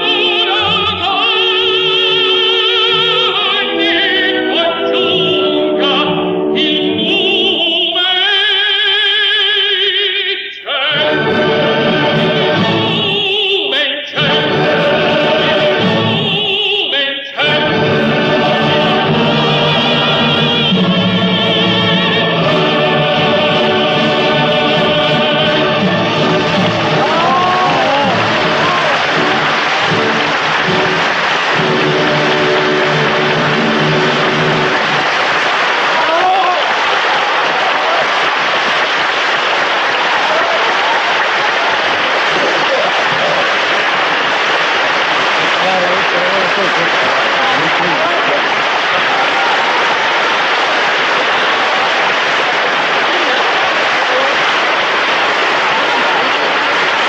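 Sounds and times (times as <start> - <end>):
held chord: 0.0 - 7.6
audience applause: 17.4 - 57.0.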